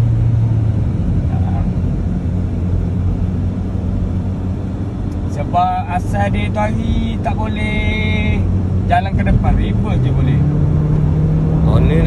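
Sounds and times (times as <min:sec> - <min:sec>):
car engine humming: 0:00.0 - 0:12.0.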